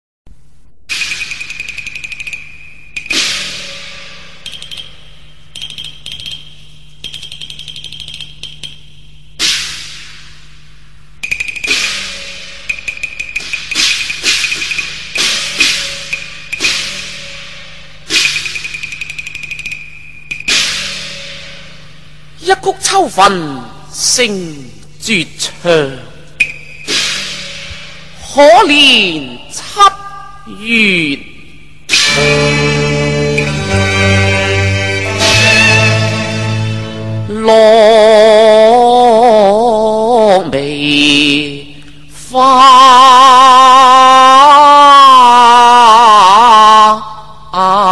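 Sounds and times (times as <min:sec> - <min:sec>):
cymbal crash ringing: 0:02.6 - 0:05.5, 0:09.4 - 0:22.4, 0:26.4 - 0:28.2, 0:31.6 - 0:37.1
opera accompaniment: 0:31.9 - 0:47.0
opera singing with vibrato: 0:37.2 - 0:47.9.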